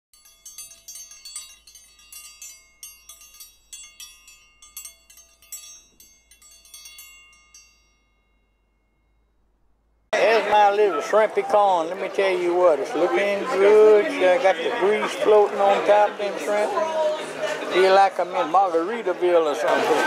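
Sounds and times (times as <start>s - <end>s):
chimes tinkling: 0.1s - 10.1s.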